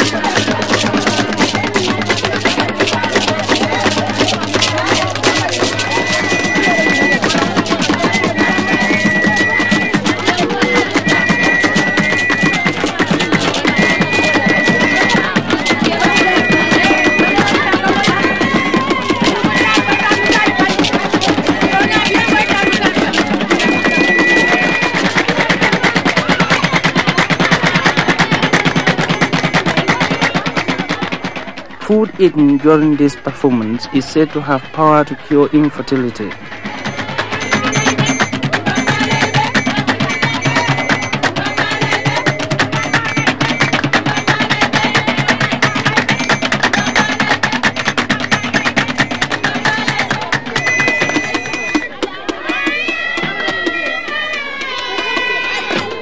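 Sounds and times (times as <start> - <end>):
water drums beaten fast: 0.0 - 56.0
high two-note tone: 4.6 - 31.6, 50.5 - 51.9.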